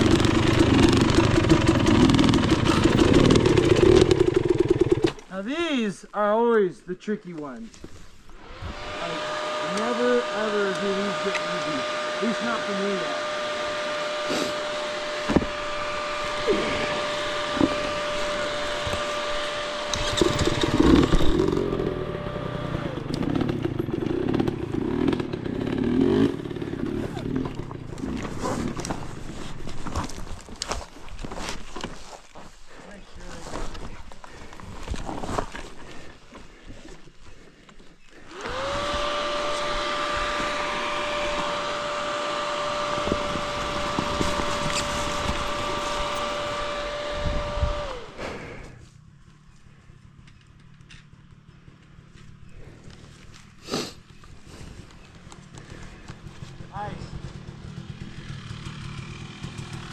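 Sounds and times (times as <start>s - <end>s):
dirt bike engine revving: 0.0s - 5.4s, 8.3s - 29.6s, 38.2s - 48.8s, 53.8s - 59.9s
steady whine: 7.8s - 30.7s, 37.6s - 48.9s.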